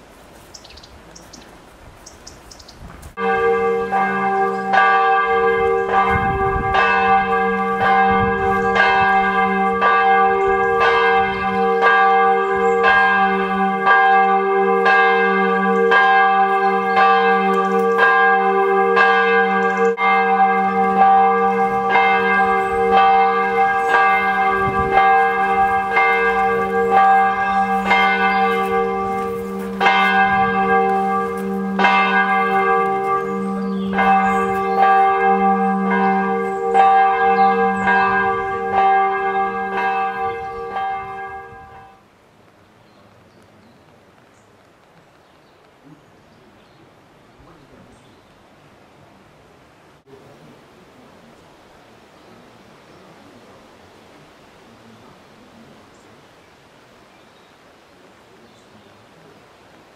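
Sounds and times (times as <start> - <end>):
church bell tolling: 3.2 - 42.0.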